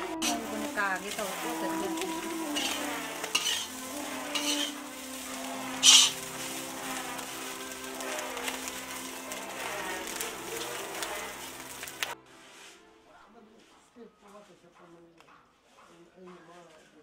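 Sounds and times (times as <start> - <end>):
frying sizzle: 0.0 - 12.6
metal spatula scraping wok: 0.0 - 12.8.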